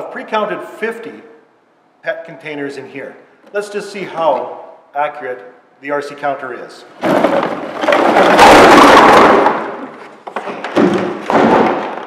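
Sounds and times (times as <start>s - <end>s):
plastic bottles clattering: 7.0s - 12.0s.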